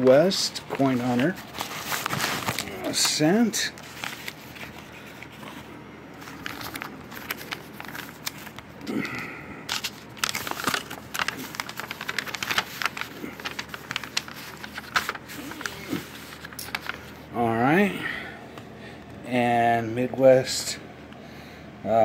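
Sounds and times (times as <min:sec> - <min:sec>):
paper crinkling and rustling: 0:00.0 - 0:17.3.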